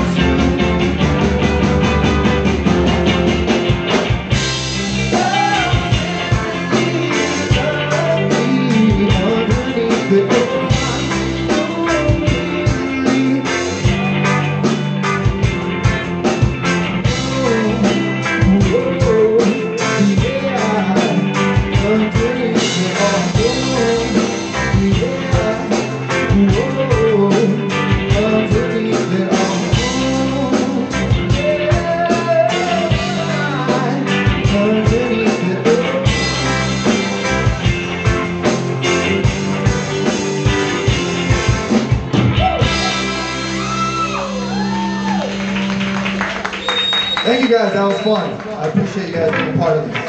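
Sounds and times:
live rock band playing: 0.0s - 50.0s
man singing lead vocal: 4.9s - 14.6s, 17.0s - 36.8s.

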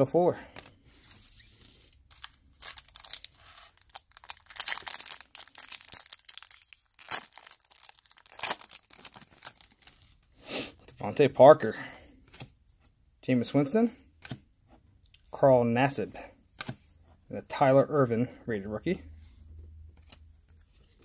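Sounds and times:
foil wrapper tearing and crinkling: 2.1s - 10.3s.

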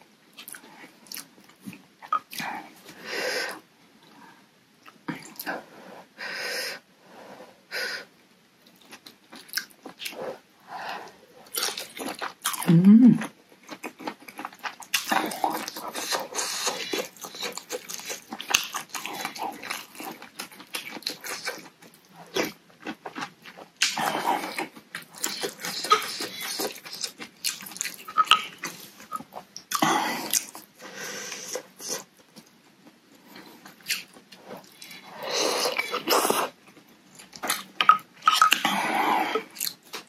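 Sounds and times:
slurping and chewing: 0.4s - 3.6s, 8.7s - 32.5s, 33.2s - 40.0s
wet mouth noises: 11.5s - 19.8s.

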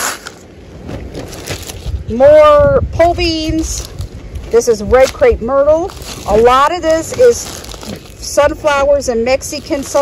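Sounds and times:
low wind rumble on microphone: 0.0s - 10.0s
plastic and paper packets crinkling: 1.1s - 2.0s, 3.5s - 10.0s.

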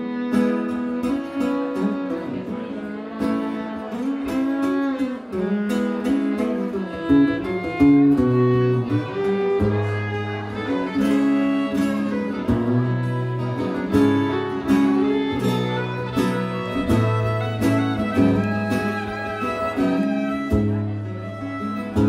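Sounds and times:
bowed fiddle melody: 0.0s - 22.0s
strummed guitar chords: 0.0s - 22.0s.

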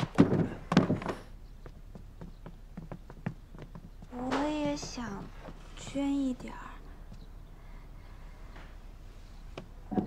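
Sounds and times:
dull thuds: 0.0s - 5.5s.

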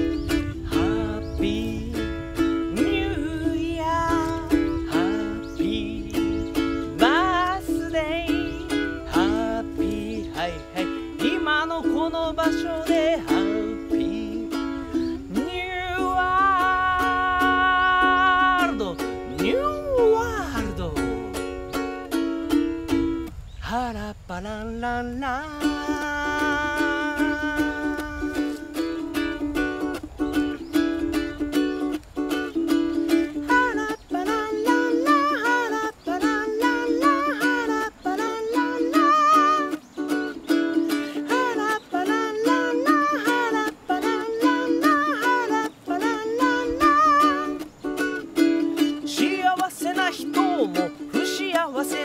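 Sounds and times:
ukulele strumming: 0.0s - 23.5s, 25.2s - 52.0s
man singing: 0.0s - 52.0s.

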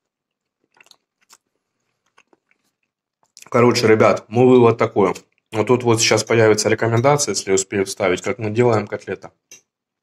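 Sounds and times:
chewing breaded meat: 0.0s - 3.6s.

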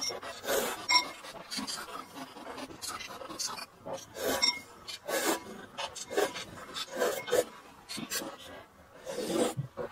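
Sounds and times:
chewing: 0.0s - 8.5s.

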